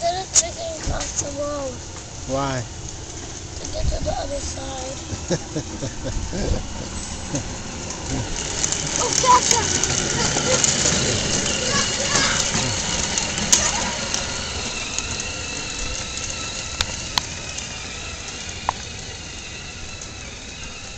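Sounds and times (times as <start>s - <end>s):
quad atv motor running: 0.0s - 20.9s
sharp clicks: 12.1s - 19.0s.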